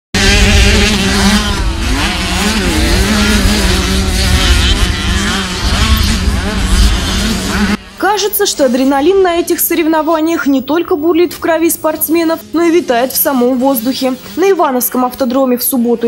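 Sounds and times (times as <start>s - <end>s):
motocross engines revving: 0.2s - 14.8s.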